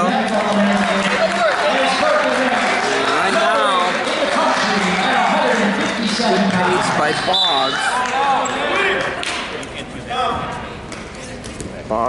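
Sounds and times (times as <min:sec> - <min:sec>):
voices echoing in a gym: 0:00.0 - 0:12.0.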